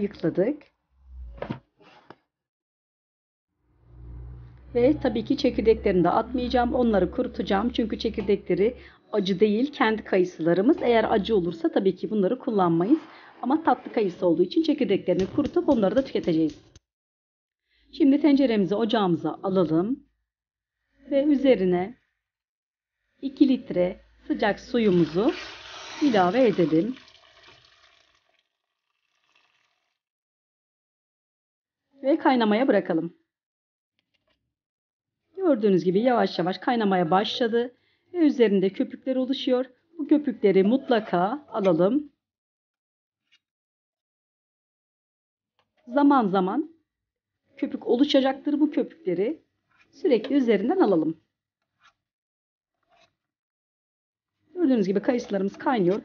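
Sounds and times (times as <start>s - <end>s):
hot water pouring into a pot: 24.8s - 30.0s.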